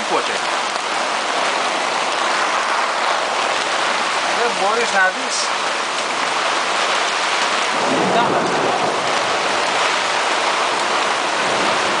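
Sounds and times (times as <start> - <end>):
heavy rain on boat cover: 0.0 - 12.0.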